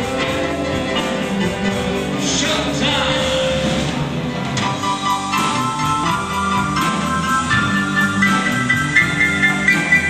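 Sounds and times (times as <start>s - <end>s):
live electric blues band: 0.0s - 10.0s.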